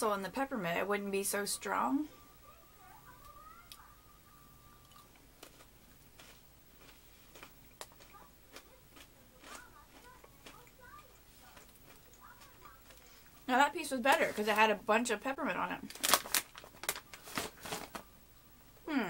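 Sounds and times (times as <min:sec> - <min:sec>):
crunchy snack chewing: 0:04.8 - 0:13.3.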